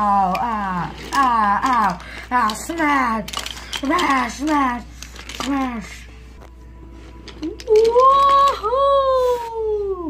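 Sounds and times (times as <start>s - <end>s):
person wailing high-pitched: 7.7s - 10.0s.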